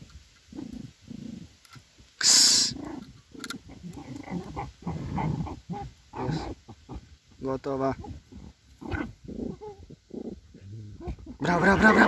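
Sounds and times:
terriers fighting fox underground: 0.0 - 12.0.

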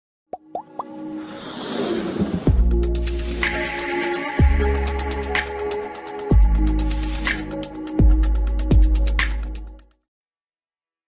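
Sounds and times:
plops gliding up in pitch: 0.3 - 1.0.

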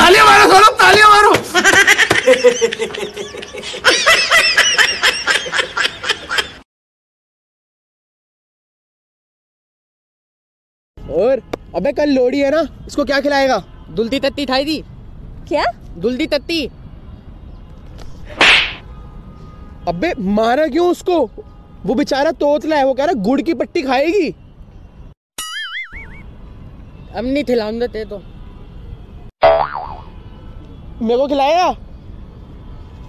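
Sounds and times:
men laughing: 1.4 - 6.6
slap whoosh: 18.3 - 18.8.

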